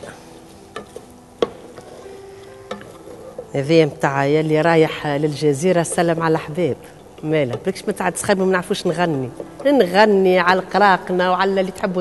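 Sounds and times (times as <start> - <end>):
faint sizzle: 0.0 - 10.4
wooden spoon stirring onions: 0.1 - 10.4
spoon knocking against pot: 0.7 - 1.8, 2.7 - 3.5.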